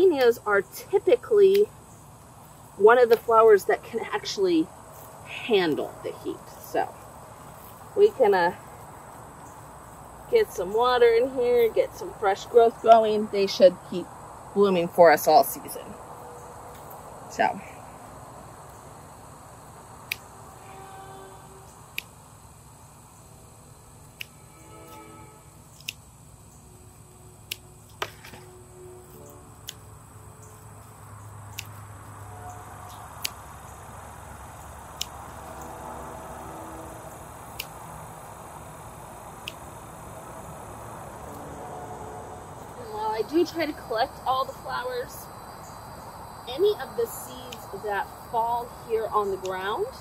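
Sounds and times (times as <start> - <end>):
faint outdoor background: 0.0 - 50.0
pruners snipping stems: 3.0 - 4.3, 29.1 - 29.9, 31.4 - 33.6, 34.9 - 35.7, 37.5 - 38.0, 46.6 - 47.8.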